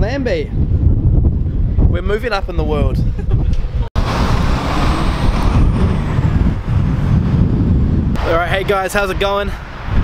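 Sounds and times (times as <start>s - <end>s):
wind rumble on microphone: 0.0s - 10.0s
road vehicles passing: 4.0s - 10.0s.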